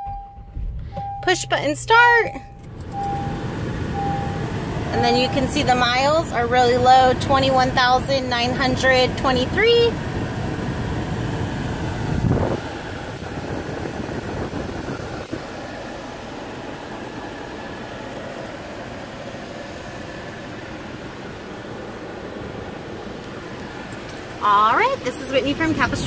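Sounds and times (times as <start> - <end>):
low bump: 0.0 - 3.3
car engine idling: 0.0 - 26.0
climate fan blowing: 1.9 - 26.0.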